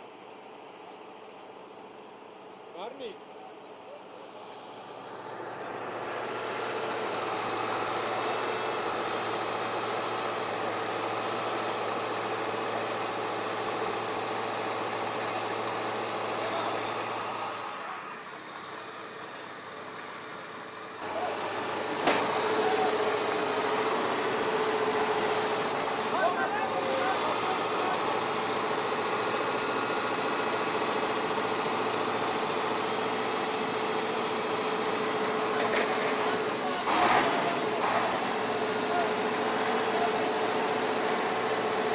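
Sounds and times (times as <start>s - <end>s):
vehicle engine idling: 0.0s - 41.9s.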